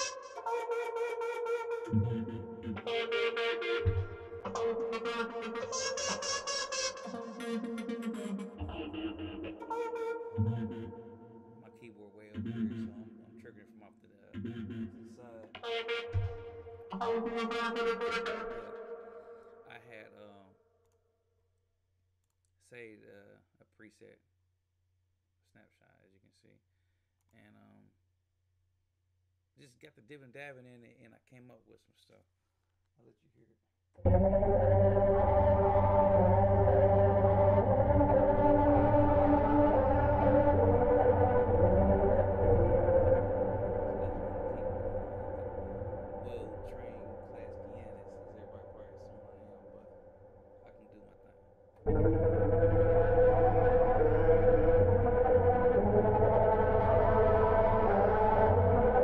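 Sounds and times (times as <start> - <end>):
droning synth pad chord: 1.7 - 11.3, 34.0 - 50.2, 51.8 - 59.0
man's voice: 1.9 - 3.2, 10.4 - 11.0, 11.6 - 15.8, 19.7 - 20.5, 22.6 - 24.2, 25.5 - 26.5, 27.4 - 27.8, 29.6 - 32.2, 34.1 - 49.9, 50.7 - 59.0
deep low hum: 34.0 - 50.0, 51.8 - 59.0.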